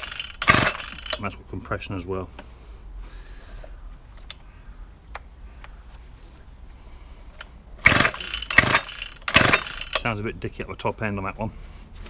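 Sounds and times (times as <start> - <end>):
engine turning over: 0.0 - 1.2, 7.8 - 10.1
recoil starter cord pulled: 0.0 - 1.2, 7.4 - 10.1.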